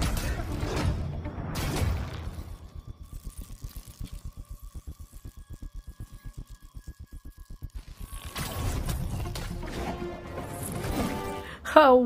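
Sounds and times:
low rapid throbbing pulse: 0.0s - 10.4s.

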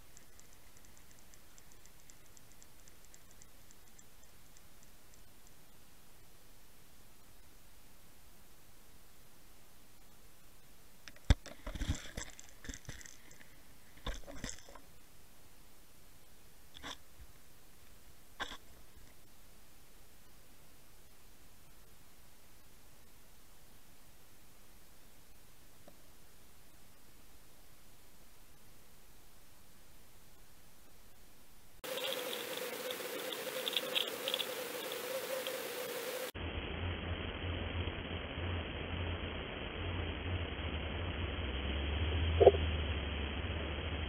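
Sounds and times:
crackling clicks: 0.0s - 5.8s, 11.0s - 15.0s, 16.7s - 19.4s, 31.8s - 35.6s
faint steady hiss: 0.0s - 42.8s
buzzing hum with fluttering edge: 0.0s - 44.0s.

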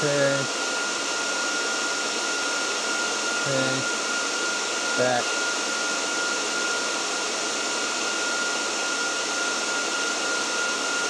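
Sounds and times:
high fan whine: 0.0s - 11.0s.

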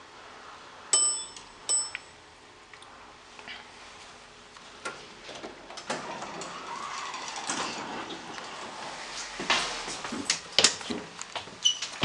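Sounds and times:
door operator mechanical running: 5.3s - 9.2s
elevator doors sliding: 5.3s - 10.3s.

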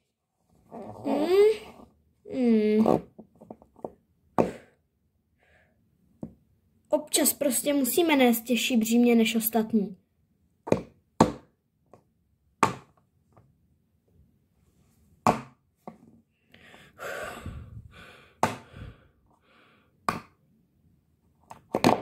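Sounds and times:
breathy noise: 16.5s - 19.9s.

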